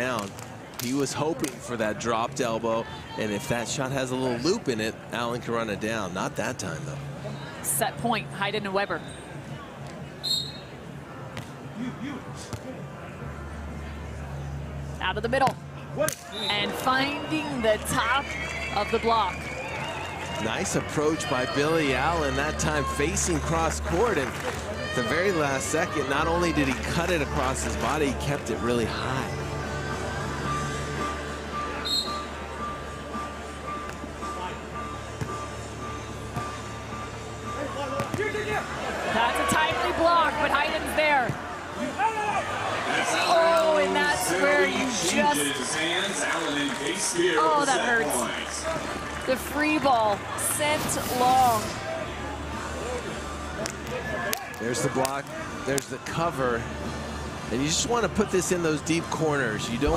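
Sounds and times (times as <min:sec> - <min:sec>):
stadium crowd murmur: 0:00.0 - 0:59.9
short whistle: 0:10.2 - 0:10.7, 0:31.8 - 0:32.3
players and crowd shouting: 0:16.3 - 0:29.2, 0:37.6 - 0:53.1.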